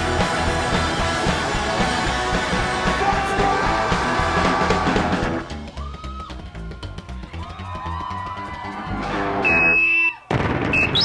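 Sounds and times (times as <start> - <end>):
live rock band playing: 0.0 - 5.6, 8.9 - 9.8.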